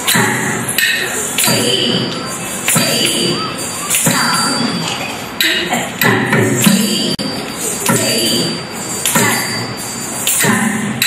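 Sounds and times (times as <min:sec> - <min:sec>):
thin steady cymbal ring: 0:06.6 - 0:11.0.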